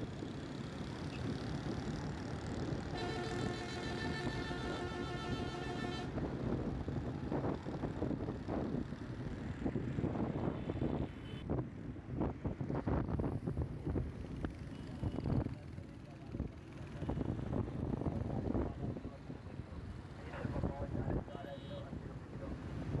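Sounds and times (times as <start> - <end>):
traffic and road noise: 0.0 - 23.0.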